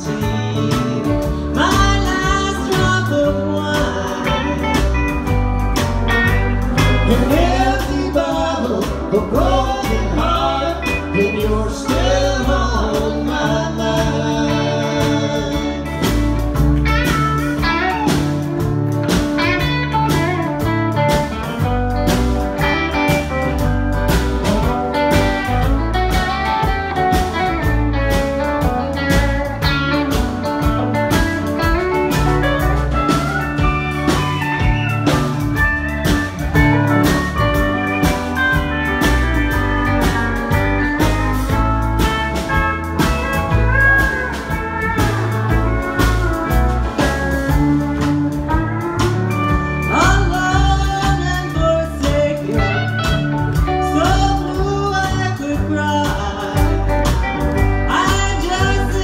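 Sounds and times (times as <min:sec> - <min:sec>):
country band playing: 0:00.0 - 0:59.0
pedal steel guitar: 0:00.0 - 0:59.0
drum-kit beat: 0:01.6 - 0:59.0.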